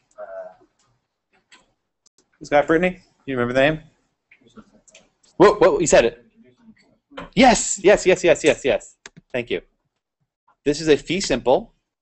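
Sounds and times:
faint voice: 0:00.1 - 0:00.6.

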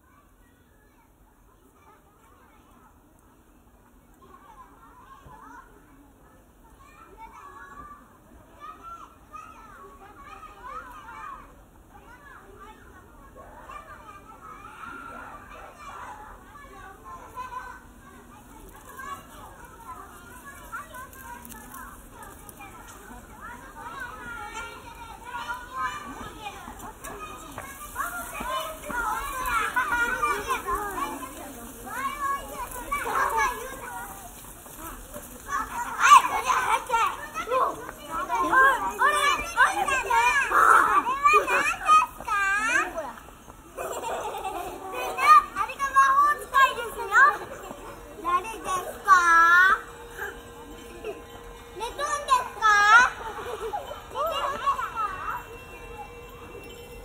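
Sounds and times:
children chattering and laughing: 0:00.0 - 0:57.0.

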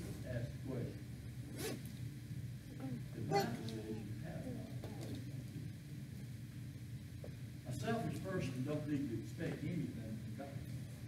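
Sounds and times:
man speaking indistinctly: 0:03.2 - 0:04.6.

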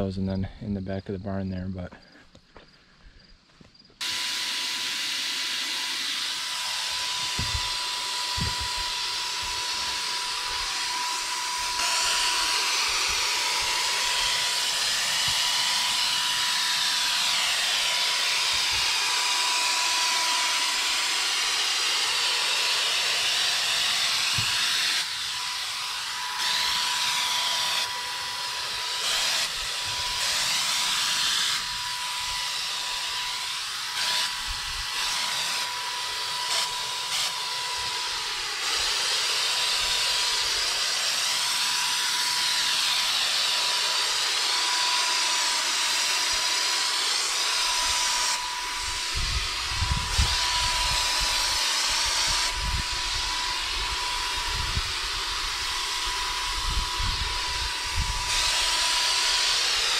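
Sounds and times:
motor whine: 0:03.8 - 0:59.9
paint sprayer hissing: 0:04.0 - 0:59.9.

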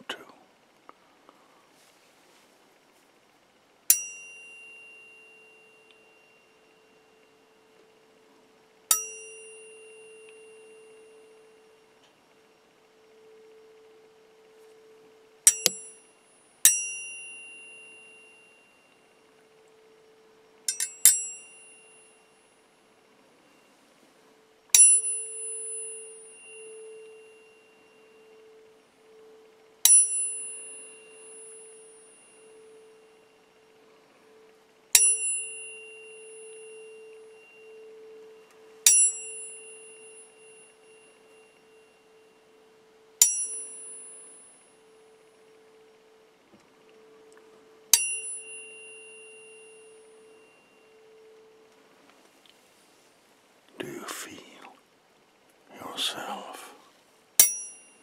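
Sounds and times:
steady low tone: 0:00.0 - 0:58.0
tuning forks pinging: 0:03.9 - 0:23.8, 0:24.7 - 0:51.8, 0:57.4 - 0:58.0.

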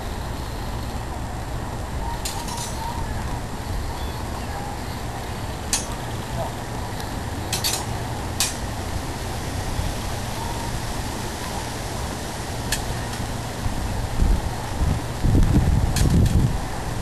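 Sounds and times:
wind on microphone: 0:00.0 - 0:17.0.

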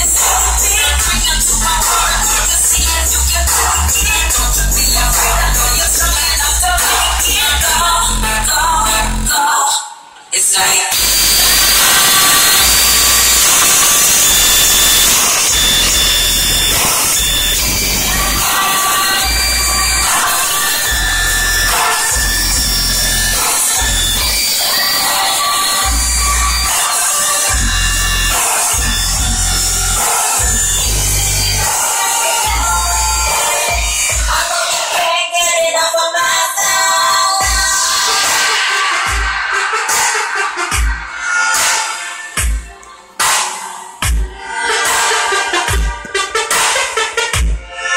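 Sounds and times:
deep bass notes: 0:00.0 - 0:09.3, 0:10.9 - 0:24.4, 0:27.5 - 0:31.7
loud music through car speakers: 0:00.0 - 0:47.9.

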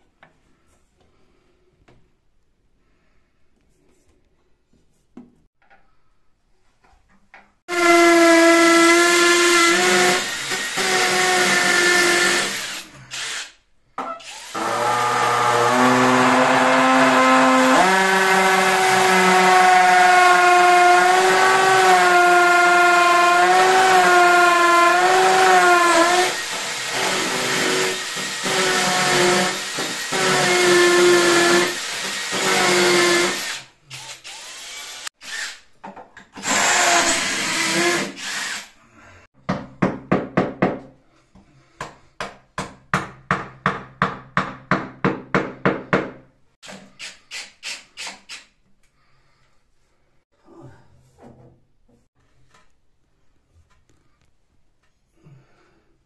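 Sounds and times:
drill boring into tile: 0:07.7 - 0:35.7, 0:36.4 - 0:38.8.

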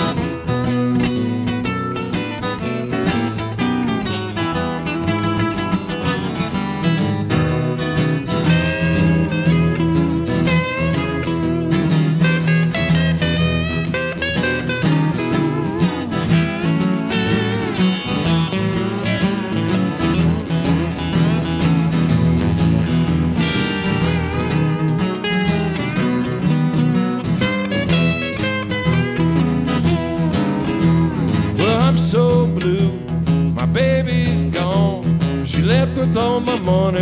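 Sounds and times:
pedal steel guitar sliding lines: 0:00.0 - 0:31.6
strummed acoustic guitars: 0:00.0 - 0:37.0.

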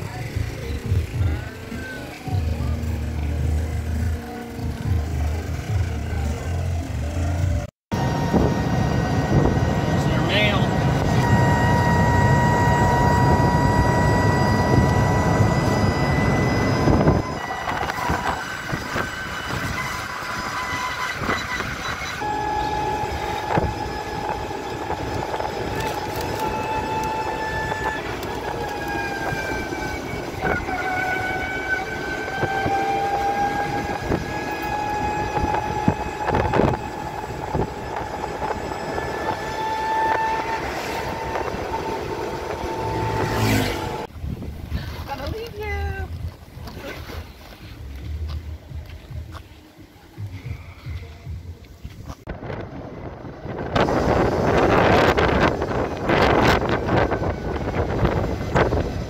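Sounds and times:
electric car drive whining: 0:00.0 - 0:44.7, 0:47.7 - 0:59.0
heavy low rumble: 0:00.0 - 0:59.0
road and wind noise: 0:00.0 - 0:59.0.

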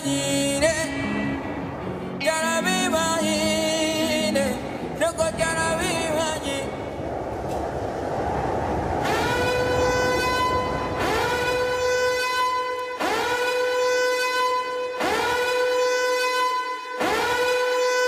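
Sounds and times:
low rumble: 0:00.4 - 0:12.7
loud horn-like blasts: 0:09.0 - 0:18.0.

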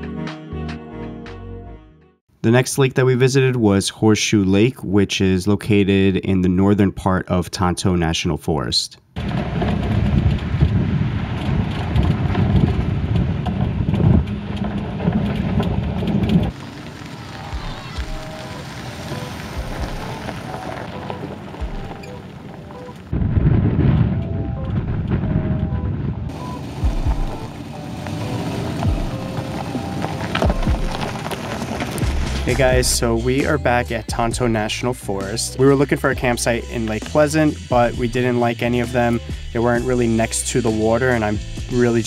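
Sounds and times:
low rumbling noise: 0:09.2 - 0:35.2
faint background music: 0:32.2 - 0:42.0.

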